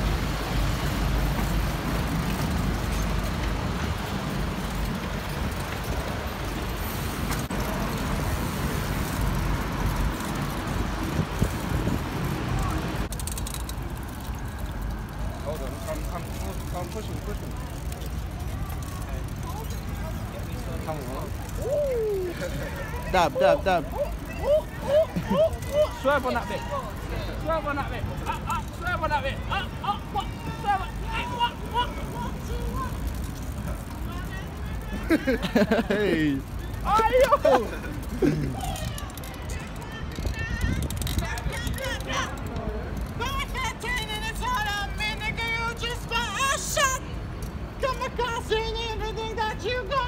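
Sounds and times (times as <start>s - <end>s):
bicycle tyres rolling: 0.0s - 50.0s
wind rumble on microphone: 10.7s - 13.0s
high-pitched voices whooping: 21.6s - 22.7s, 24.0s - 26.0s.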